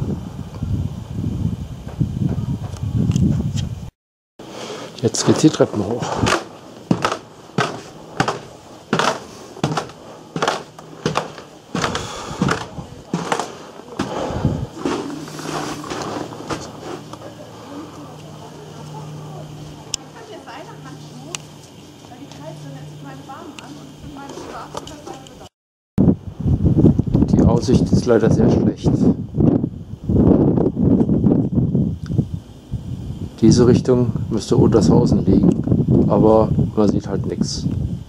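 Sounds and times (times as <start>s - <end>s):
low hum: 4.7s - 25.4s
footsteps on wooden stairs: 5.1s - 17.2s.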